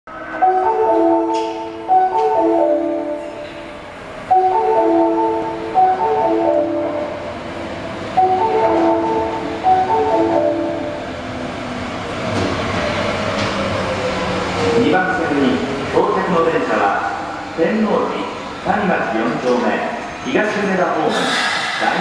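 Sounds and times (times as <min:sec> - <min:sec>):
subway train running noise: 0:00.1 - 0:22.0
marimba-like tune over speakers: 0:08.2 - 0:10.9
train brakes whining: 0:21.1 - 0:22.0.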